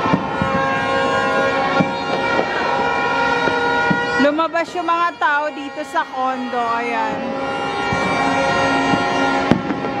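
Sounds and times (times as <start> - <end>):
loud firework bang: 0.0 - 4.2, 7.1 - 10.0
firecrackers popping: 0.0 - 5.0, 7.0 - 10.0.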